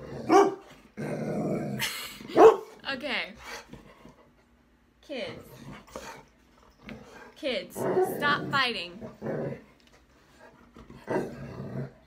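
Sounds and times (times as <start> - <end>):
dog growling: 0.0 - 2.4, 6.9 - 9.8, 10.4 - 12.0.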